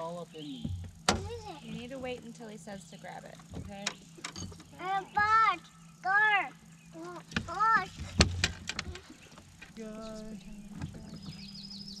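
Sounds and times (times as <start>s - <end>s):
steady hum: 0.0s - 12.0s
knocks and clatter in boat: 0.6s - 2.3s, 3.3s - 4.7s, 7.3s - 9.7s, 10.6s - 11.5s.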